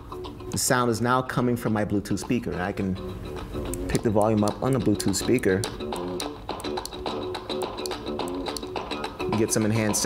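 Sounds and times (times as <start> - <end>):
guitar music through speaker: 0.0 - 10.0.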